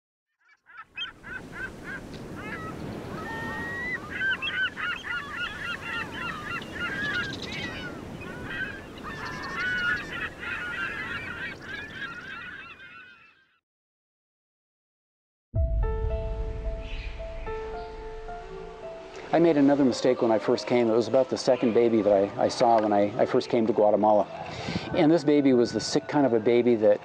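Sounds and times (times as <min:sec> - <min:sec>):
birds honking: 0:00.7 - 0:13.6, 0:16.8 - 0:27.0
steady low rush: 0:15.6 - 0:19.6.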